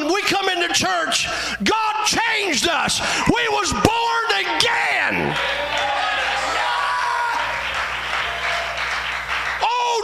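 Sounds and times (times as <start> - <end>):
congregation calling out: 1.7 - 10.0
steady low hum: 2.9 - 10.0
congregation applauding: 3.2 - 10.0.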